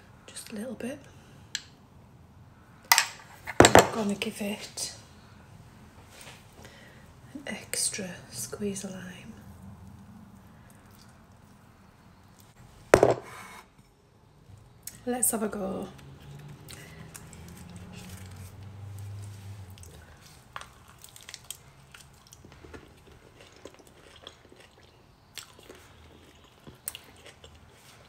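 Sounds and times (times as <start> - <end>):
knock on kitchen worktop: 13.0 - 13.3.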